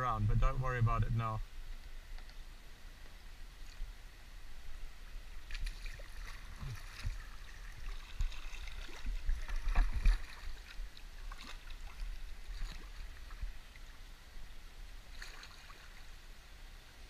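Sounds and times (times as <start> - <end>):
steady low rumble: 0.0 - 15.2
paddle strokes splashing: 5.4 - 14.0, 15.0 - 16.2.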